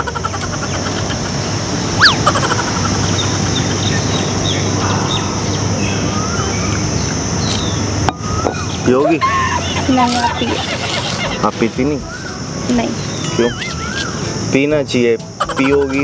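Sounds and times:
birds chirping and calling: 0:00.0 - 0:16.0
distant traffic: 0:00.0 - 0:16.0.

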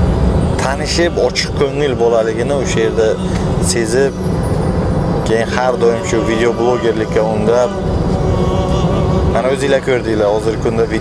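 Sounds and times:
car cabin road rumble: 0:00.0 - 0:11.0
man speaking: 0:00.6 - 0:04.2, 0:05.2 - 0:11.0.

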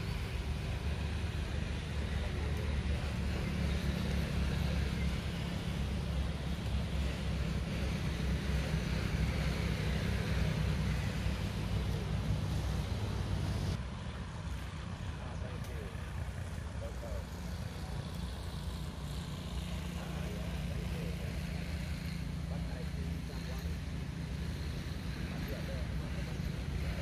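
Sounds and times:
faint voices: 0:00.0 - 0:27.0
low engine rumble: 0:00.0 - 0:27.0.

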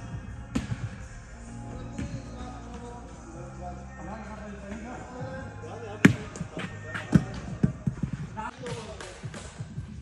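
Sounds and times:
ball bouncing in echoing hall: 0:00.1 - 0:01.2, 0:01.8 - 0:02.9, 0:06.0 - 0:10.0.

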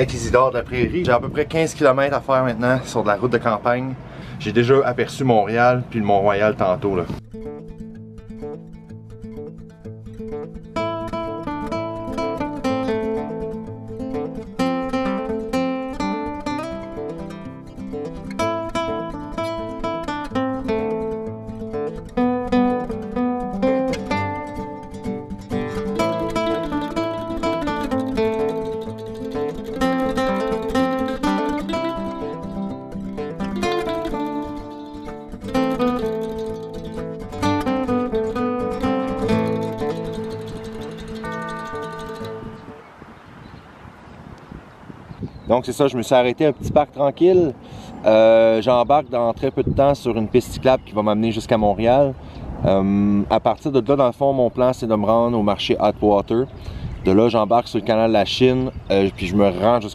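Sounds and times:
acoustic guitar music: 0:00.0 - 0:43.2, 0:46.0 - 0:59.9.

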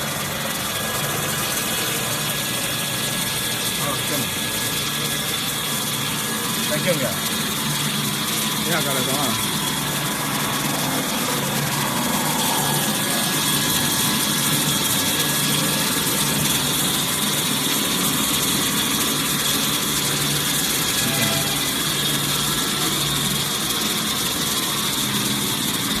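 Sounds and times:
high mechanical whine: 0:00.0 - 0:26.0
paper roll cutting machine running: 0:00.0 - 0:26.0.

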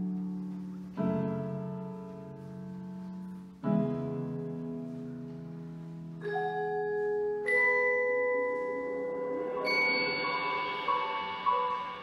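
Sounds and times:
marimbas and vibraphones playing chords: 0:06.2 - 0:12.0.

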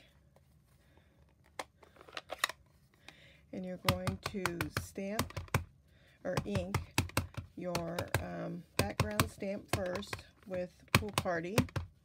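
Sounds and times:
plastic ink pad clicking: 0:03.8 - 0:05.7, 0:06.4 - 0:10.2, 0:10.9 - 0:12.0.

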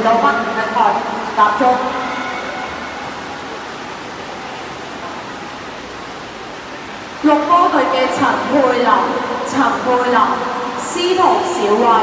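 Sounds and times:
swimmers splashing water: 0:00.0 - 0:12.0.

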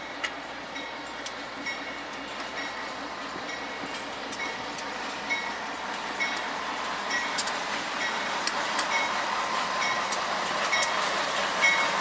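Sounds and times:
diesel freight train: 0:00.0 - 0:12.0.

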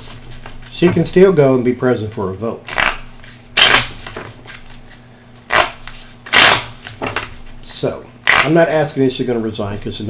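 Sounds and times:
cards being shuffled: 0:02.7 - 0:07.6.

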